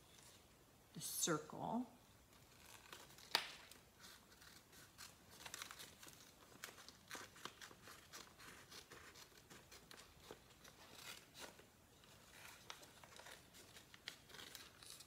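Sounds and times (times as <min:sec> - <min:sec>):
paper crinkling and rustling: 0:02.3 - 0:15.0.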